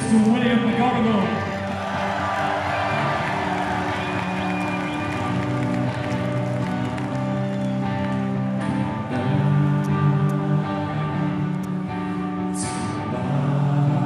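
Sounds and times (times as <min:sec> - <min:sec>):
rock band playing live: 0:00.0 - 0:14.0.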